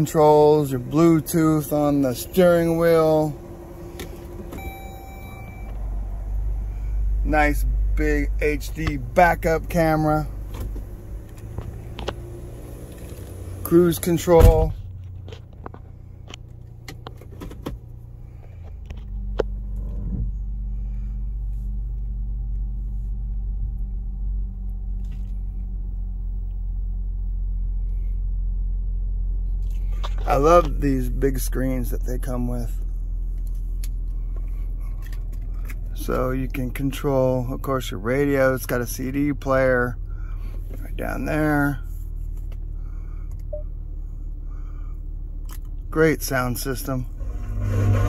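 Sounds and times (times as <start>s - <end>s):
low rumble: 0.0s - 17.1s, 17.8s - 36.2s, 39.8s - 48.0s
car engine hum: 0.0s - 48.0s
car electronic chime: 4.4s - 6.0s.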